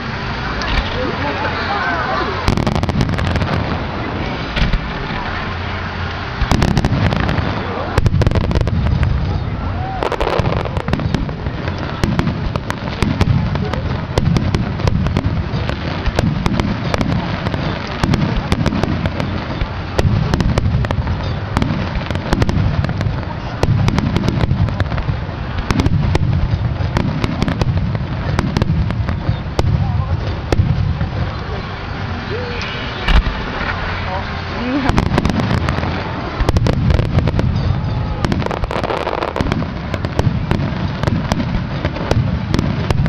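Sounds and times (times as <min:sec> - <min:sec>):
deep firework booms: 0:00.0 - 0:01.5, 0:02.2 - 0:43.0
sharp crackling firework reports: 0:00.0 - 0:43.0.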